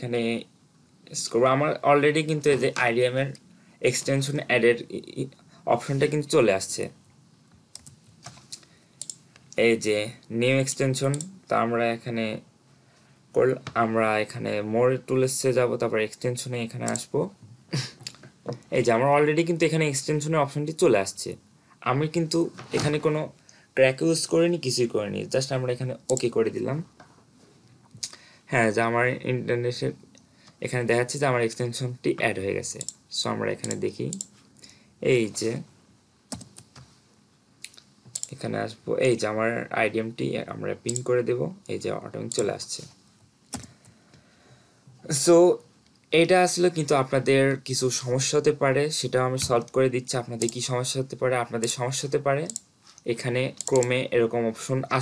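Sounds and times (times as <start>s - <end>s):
man speaking: 0.0s - 7.0s, 9.5s - 12.5s, 13.3s - 27.0s, 28.0s - 34.2s, 35.0s - 35.7s, 38.2s - 43.0s, 45.0s - 55.0s
faint computer clicks: 16.8s - 17.1s, 26.1s - 26.4s, 33.6s - 34.4s, 36.3s - 36.9s, 37.6s - 38.4s, 40.9s - 41.1s, 42.3s - 42.5s, 43.5s - 43.8s, 50.4s - 50.6s, 52.5s - 52.7s, 53.6s - 54.0s.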